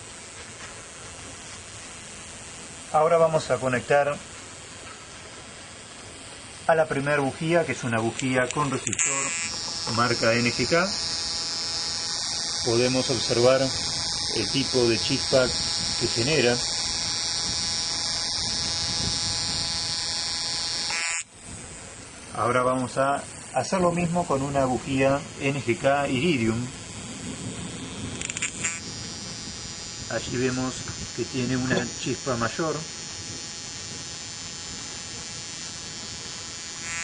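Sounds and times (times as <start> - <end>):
electric buzz of sparks: 0.0 - 37.0.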